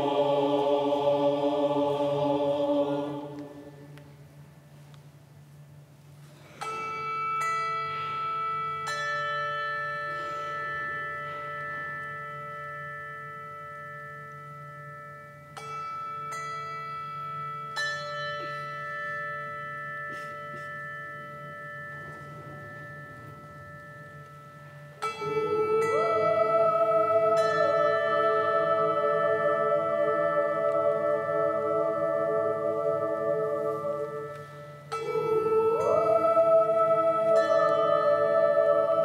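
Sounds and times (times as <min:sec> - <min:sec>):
choir singing: 0:00.0 - 0:04.0, 0:25.2 - 0:39.0
handbells ringing: 0:06.6 - 0:31.7.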